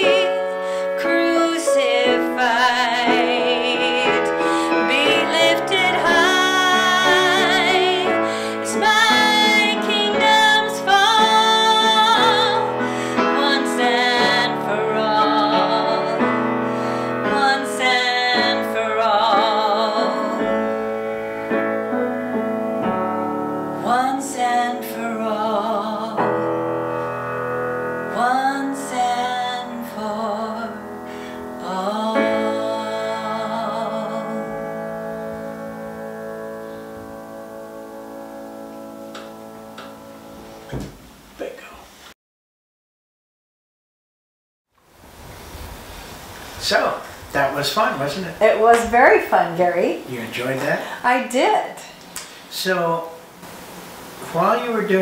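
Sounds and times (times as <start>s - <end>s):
woman singing with vibrato: 0.0s - 20.8s, 23.8s - 26.4s, 28.1s - 35.2s
grand piano accompaniment: 0.0s - 41.3s.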